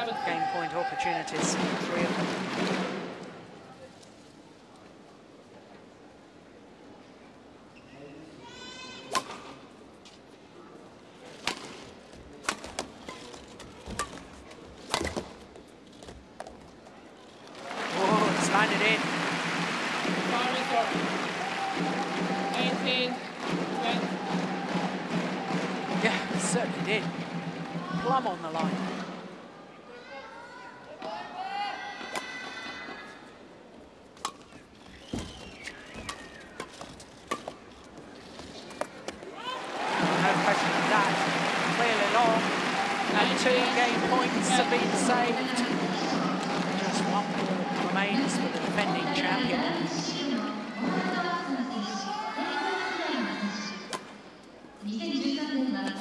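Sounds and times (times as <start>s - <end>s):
racket hitting shuttlecock: 9.1s - 9.5s, 11.4s - 11.8s, 12.4s - 15.4s, 35.2s - 37.7s
crowd cheering and applauding: 17.6s - 28.2s, 39.4s - 49.6s.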